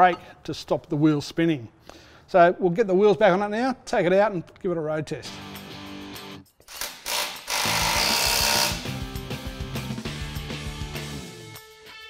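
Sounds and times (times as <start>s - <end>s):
power tool burst: 6.8s - 8.8s.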